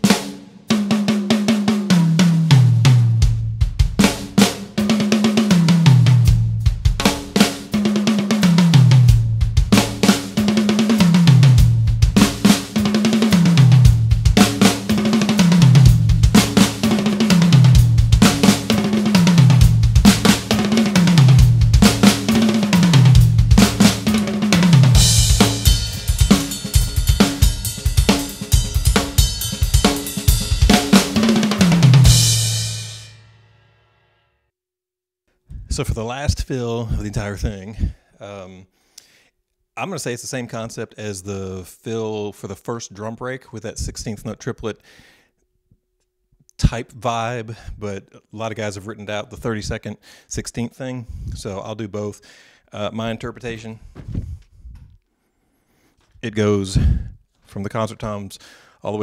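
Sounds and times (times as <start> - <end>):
drum fill on toms: 0.0 - 33.2
kick and snare strokes: 9.7 - 32.1
cymbals ringing: 25.1 - 30.6.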